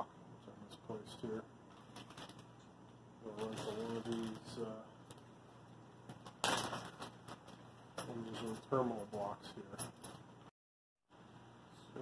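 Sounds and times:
plastic bag crinkling and crackling: 1.7s - 2.6s, 3.2s - 5.2s.

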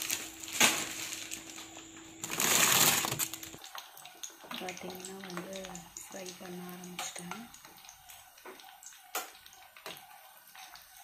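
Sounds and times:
plastic bags crinkling: 0.0s - 3.6s.

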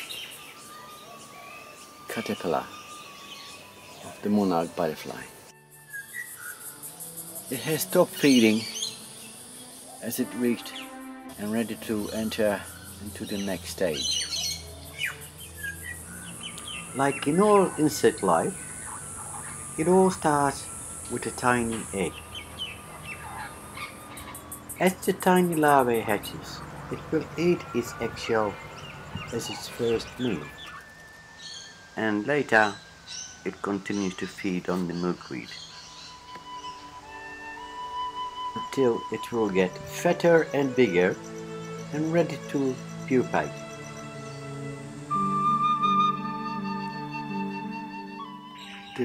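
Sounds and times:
small birds chirping: 0.0s - 49.0s
steady ambient hiss: 0.0s - 49.0s
thin steady high tone: 15.7s - 37.0s.

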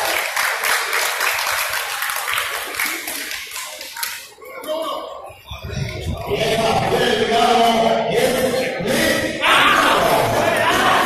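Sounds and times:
crowd clapping: 0.0s - 4.4s.

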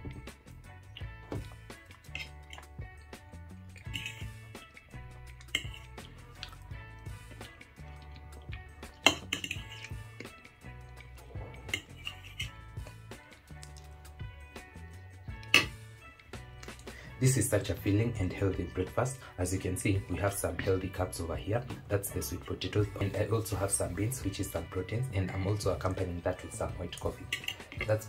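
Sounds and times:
soft background music: 0.0s - 28.0s
fork clinking on ceramic plate: 3.8s - 4.3s, 5.4s - 5.9s, 9.0s - 10.0s, 11.7s - 12.6s, 27.2s - 27.7s.

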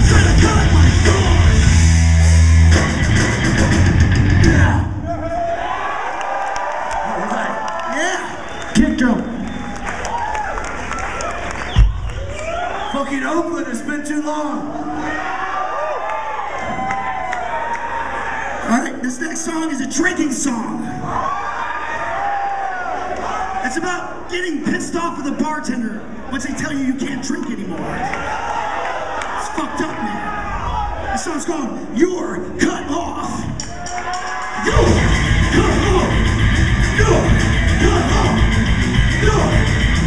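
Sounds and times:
drums and cymbals crashing: 0.0s - 4.9s, 34.1s - 40.0s
thrash metal band playing live: 0.0s - 5.0s, 34.7s - 40.0s
crowd yelling: 0.0s - 13.5s, 14.3s - 18.8s, 20.8s - 24.3s, 27.7s - 31.8s, 33.5s - 40.0s.

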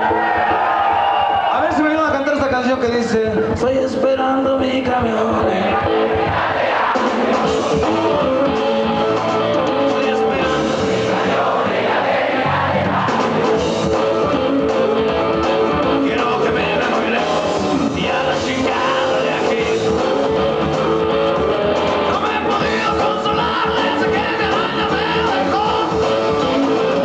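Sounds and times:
live rock band: 0.0s - 27.0s
electric guitar: 7.1s - 11.7s, 12.4s - 27.0s.

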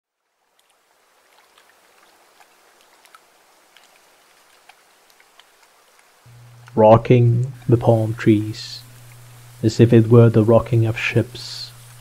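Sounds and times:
small water drips and splashes: 0.1s - 6.8s
lake water lapping at shore: 0.4s - 12.0s.

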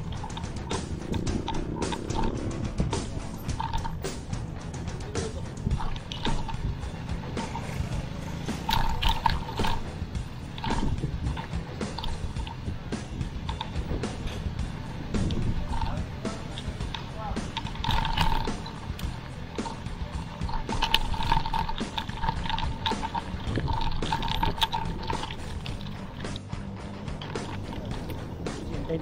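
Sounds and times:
bike rattling clicks: 0.0s - 29.0s
faint music: 0.0s - 29.0s
wind and road noise: 0.0s - 29.0s.

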